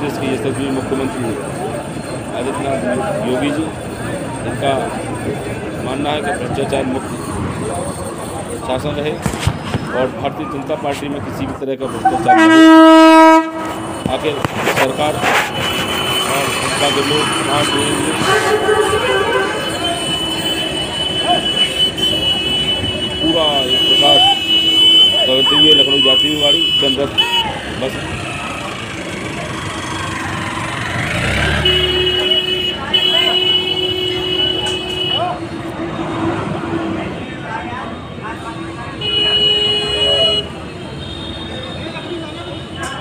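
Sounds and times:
high-pitched vehicle horn: 11.9s - 27.7s, 31.0s - 35.4s, 38.4s - 42.9s
distant voices: 13.4s - 43.0s.

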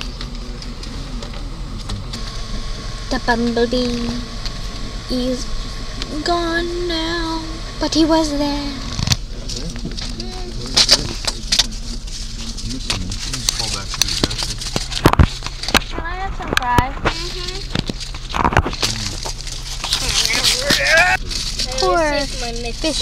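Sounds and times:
car engine and road hum: 0.0s - 23.0s
clicks and rustling of handling: 8.8s - 23.0s
brief voices: 19.9s - 21.2s.

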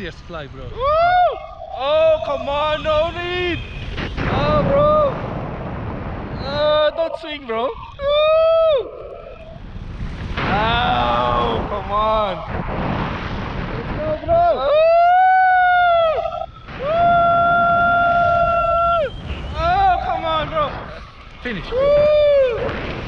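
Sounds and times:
wind on microphone: 0.0s - 23.0s
people yelling and screaming: 0.7s - 3.6s, 4.2s - 5.3s, 6.4s - 9.7s, 10.4s - 12.6s, 13.9s - 23.0s.

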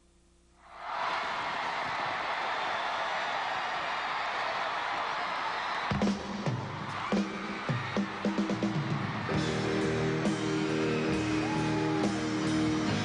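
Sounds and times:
arena crowd cheering and screaming: 0.6s - 13.0s
band playing low instrument notes: 9.3s - 13.0s.

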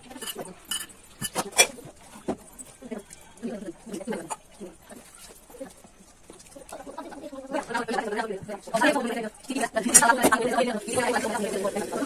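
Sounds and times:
metal spoon clinking on bowl: 0.1s - 1.8s.

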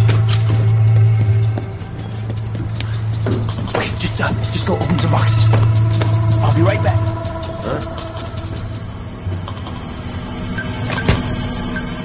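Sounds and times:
suspenseful film score: 0.0s - 12.0s.

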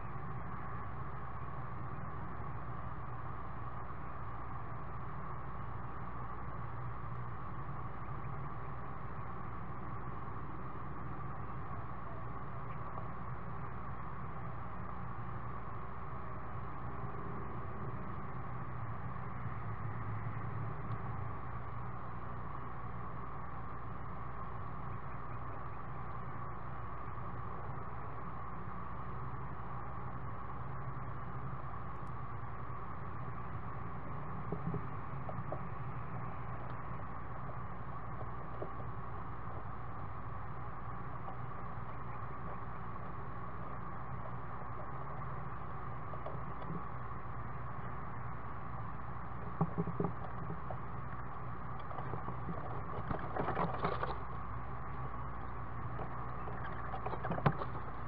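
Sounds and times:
microphone hiss and hum: 0.0s - 58.0s
faint scratches and taps: 34.5s - 35.7s, 46.1s - 46.9s, 49.4s - 54.2s, 56.0s - 57.9s.

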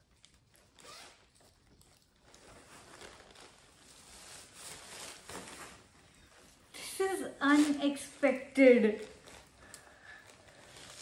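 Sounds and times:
plastic bag rustling: 2.1s - 11.0s
plastic wrapping swish: 2.3s - 6.0s, 6.8s - 8.2s, 9.0s - 11.0s.

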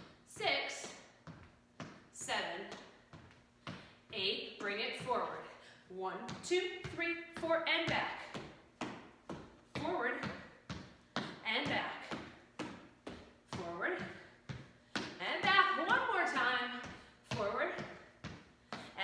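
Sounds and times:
feet stepping on wooden floor: 6.3s - 15.2s.

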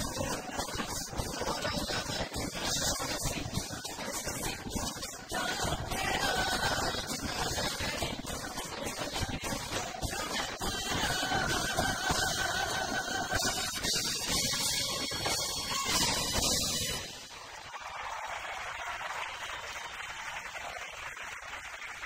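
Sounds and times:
audience applause: 17.3s - 22.0s.

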